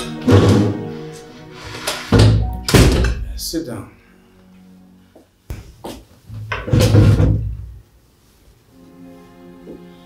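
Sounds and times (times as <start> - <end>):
background film music: 0.0 - 5.5, 8.6 - 10.0
door thudding shut: 2.2 - 3.3.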